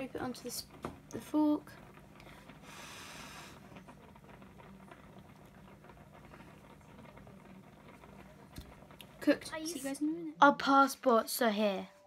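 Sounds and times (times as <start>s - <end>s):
crackling and popping in a pan: 0.0s - 11.9s.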